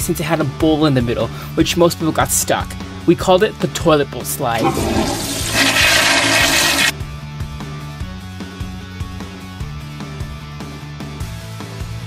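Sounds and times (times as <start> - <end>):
loud rushing water: 4.6 - 6.9.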